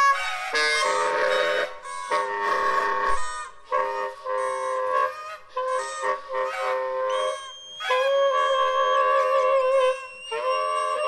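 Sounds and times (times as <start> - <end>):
soprano saxophone improvising: 0.0 - 11.0.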